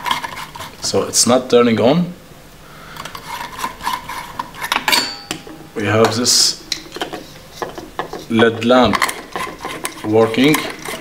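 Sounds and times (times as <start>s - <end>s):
bulb scraping in socket: 3.0s - 5.5s, 6.1s - 11.0s.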